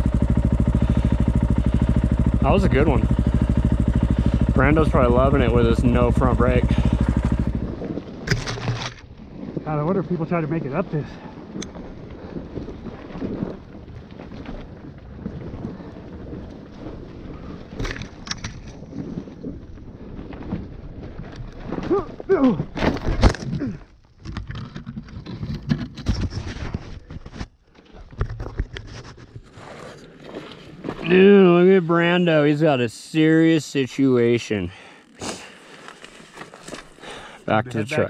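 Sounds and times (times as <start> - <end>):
dirt bike engine and tyres: 0.0 - 37.6
knocks from rocks: 8.2 - 9.1.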